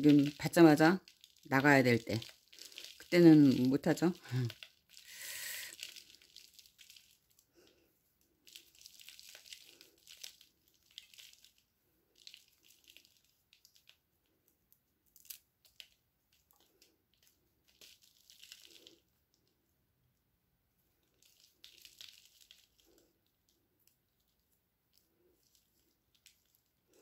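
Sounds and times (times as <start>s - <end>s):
roots crackling and rustling: 0.0s - 14.4s, 15.0s - 19.5s, 21.0s - 27.0s.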